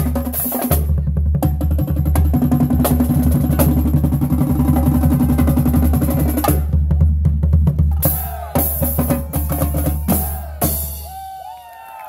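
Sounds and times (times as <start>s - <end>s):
bass drum: 0.0s - 11.2s
tenor drums: 0.0s - 11.3s.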